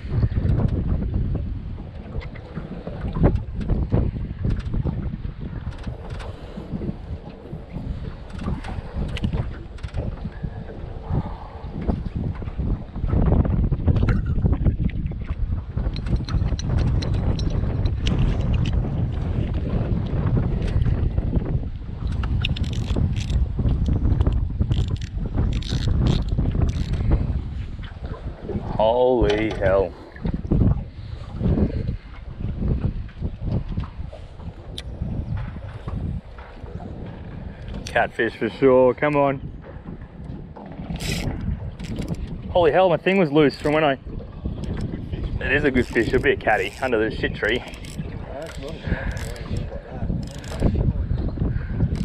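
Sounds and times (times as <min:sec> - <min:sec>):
wind buffeting microphone: 0:00.0 - 0:52.0
fishing reel clicks and knocks: 0:15.9 - 0:18.8, 0:22.1 - 0:27.0, 0:40.9 - 0:42.4, 0:45.7 - 0:49.6, 0:50.2 - 0:50.7.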